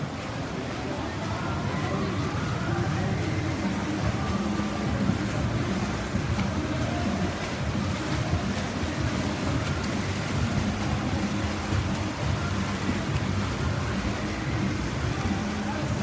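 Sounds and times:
spectators noise: 0:00.0 - 0:16.0
swimmers splashing: 0:00.0 - 0:16.0.

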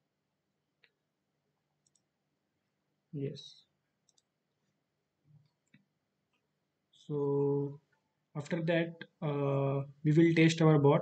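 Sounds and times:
computer mouse click: 0:01.8 - 0:02.1, 0:04.0 - 0:04.4.

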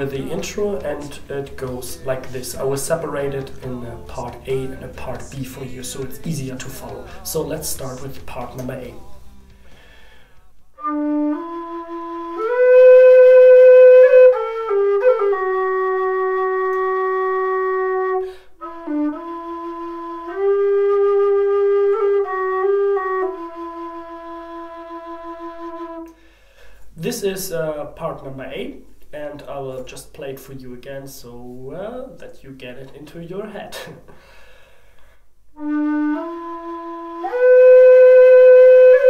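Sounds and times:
tin whistle melody: 0:10.7 - 0:26.2, 0:35.5 - 0:39.0.

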